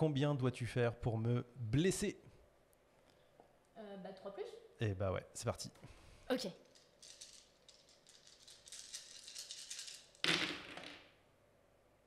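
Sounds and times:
dice clattering and rolling: 6.6s - 11.1s
dice rattling in hand: 6.6s - 11.1s.

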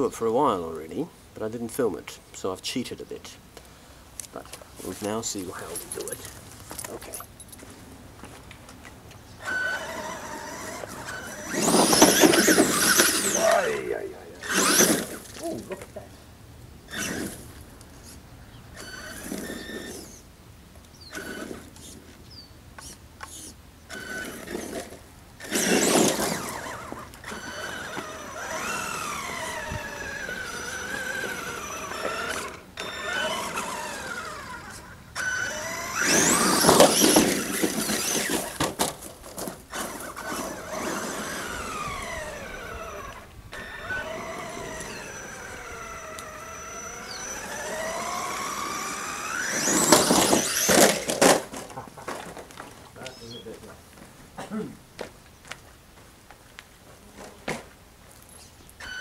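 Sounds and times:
electric motor whining: 9.4s - 15.8s, 16.8s - 17.6s, 18.7s - 20.3s, 21.0s - 22.0s, 22.8s - 38.8s, 39.4s - 51.6s, 58.8s - 59.0s.

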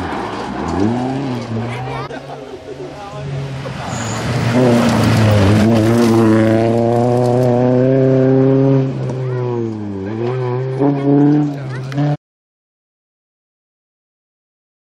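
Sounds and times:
rally car engine revving past: 3.2s - 12.2s.

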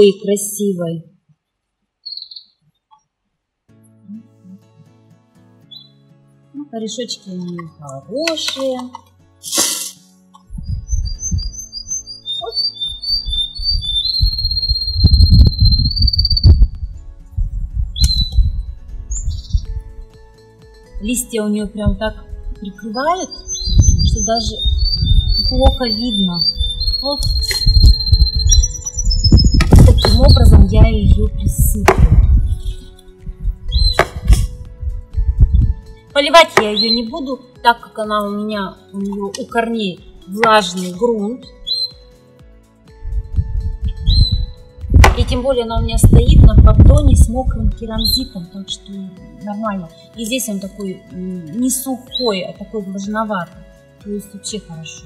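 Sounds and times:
bird singing: 2.0s - 3.1s, 5.6s - 6.0s, 7.2s - 8.9s, 10.6s - 16.7s, 18.0s - 19.8s, 22.6s - 31.4s, 32.3s - 34.4s, 35.5s - 37.5s, 40.1s - 42.1s, 43.8s - 45.6s, 47.9s - 48.6s, 51.0s - 53.0s
soft background music: 3.6s - 55.0s
soil pressed into plastic pot: 7.6s - 10.5s, 33.8s - 34.6s
wind buffeting microphone: 10.5s - 12.0s, 12.9s - 20.1s, 21.6s - 36.0s, 43.0s - 48.4s
sharp knocks: 31.9s - 32.3s, 33.9s - 34.5s, 45.0s - 45.4s.

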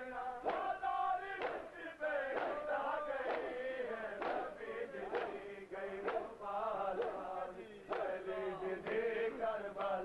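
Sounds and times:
crowd of men chanting: 0.0s - 10.0s.

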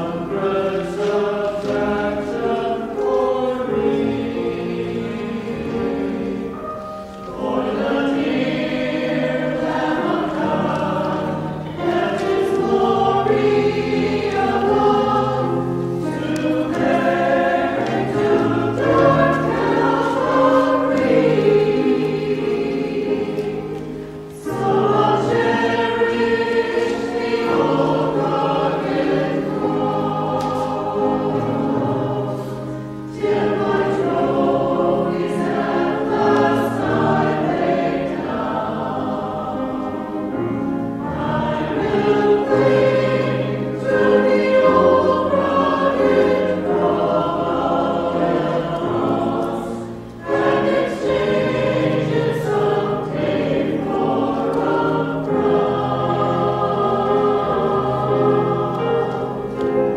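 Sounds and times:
church choir singing: 0.0s - 59.9s.

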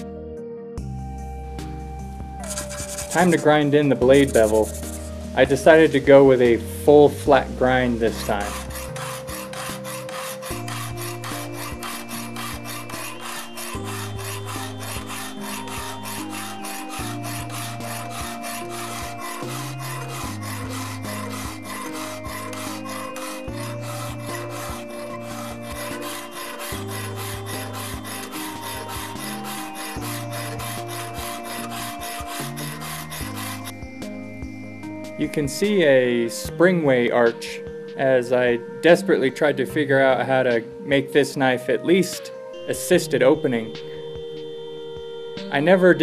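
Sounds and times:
background music: 0.0s - 46.0s
hand file on steel blade: 2.4s - 6.1s, 6.9s - 33.8s.

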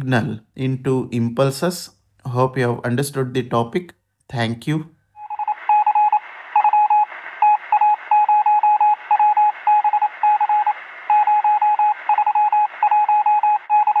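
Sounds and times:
rapid electronic morse-like beeping: 5.2s - 14.0s
narrow-band radio hiss: 5.5s - 12.1s.

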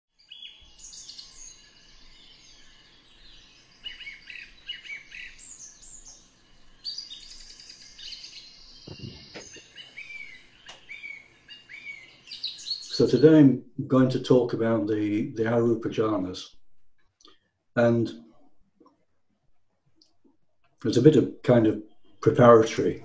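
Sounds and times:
birds chirping and trilling: 0.1s - 16.2s, 20.8s - 23.0s.

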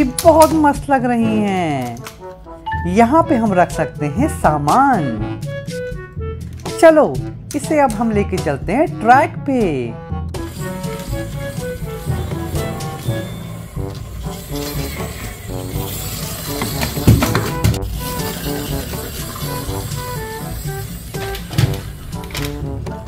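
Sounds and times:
bright melody over low beat: 1.2s - 23.0s.

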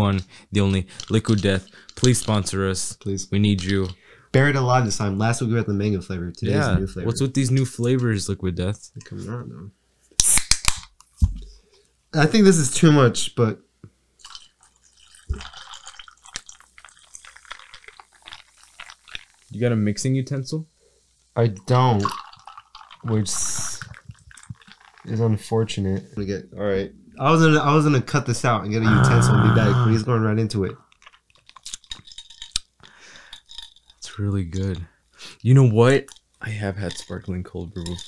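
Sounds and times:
wet mouth clicks: 10.2s - 10.8s
person sipping and swallowing: 14.2s - 19.5s, 22.0s - 25.1s, 28.9s - 30.0s
sparkling water fizzing: 14.2s - 20.2s, 21.2s - 25.5s.

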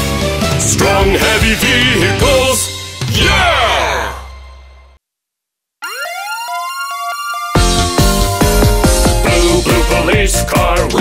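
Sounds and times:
police siren wailing: 5.8s - 9.5s.

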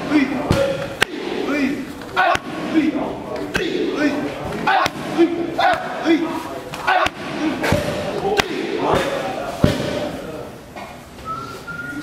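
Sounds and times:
people shouting: 0.0s - 3.0s, 3.6s - 9.1s
kicks smacking on pads: 7.0s - 10.1s.

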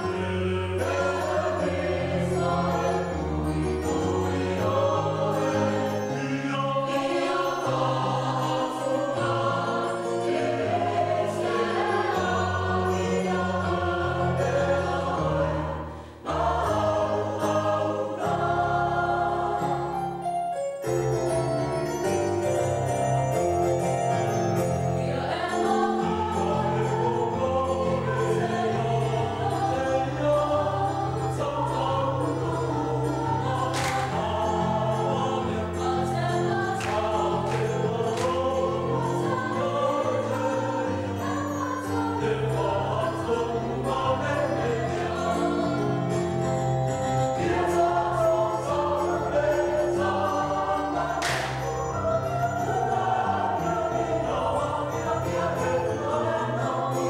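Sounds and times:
choir singing a hymn: 0.0s - 20.3s, 21.1s - 57.0s
steady accompaniment: 0.0s - 57.0s
sharp percussive strikes: 33.7s - 34.4s, 51.2s - 51.9s.

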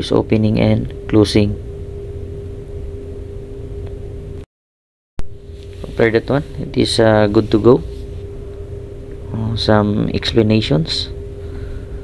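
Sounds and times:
machinery drone and hum: 0.0s - 4.5s, 5.2s - 12.0s.

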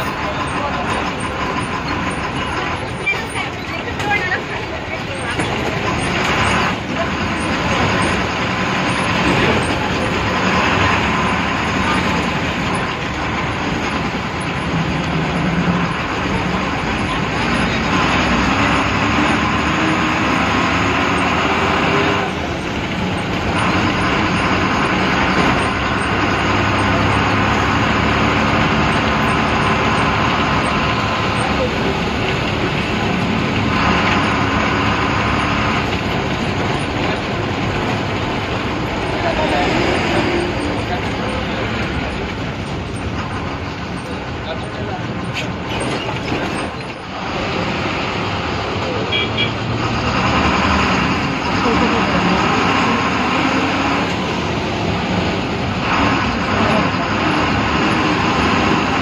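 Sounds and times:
bus diesel engine: 0.0s - 59.0s.

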